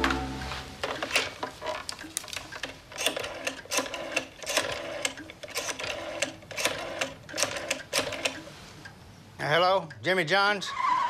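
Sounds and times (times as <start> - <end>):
rotary telephone dial whirring and clicking: 2.3 - 8.5.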